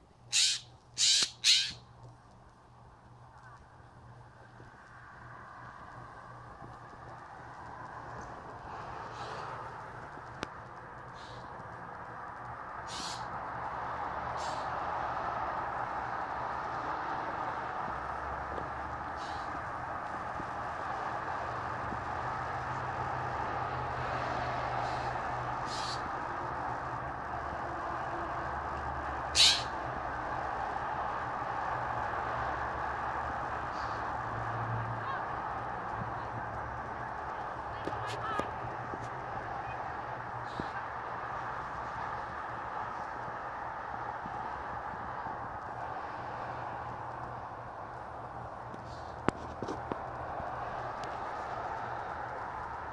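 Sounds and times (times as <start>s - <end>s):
blue jay scolding calls: 0.3s - 1.9s, 12.8s - 13.3s, 25.6s - 26.1s, 29.3s - 29.8s.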